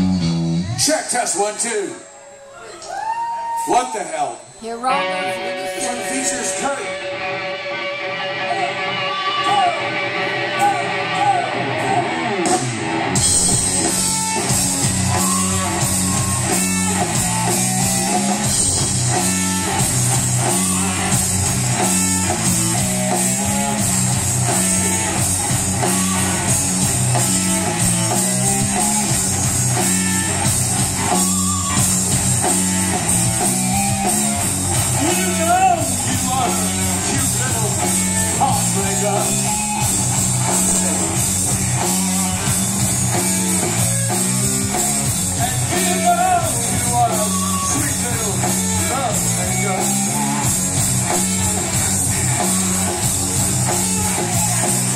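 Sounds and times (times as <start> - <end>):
electric guitar: 0.0 - 1.6, 4.6 - 54.9
drum kit: 8.4 - 54.9.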